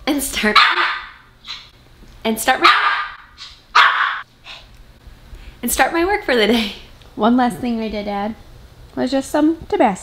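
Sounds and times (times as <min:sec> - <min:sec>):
small dog barking: 0:00.5 - 0:01.7, 0:02.6 - 0:04.3.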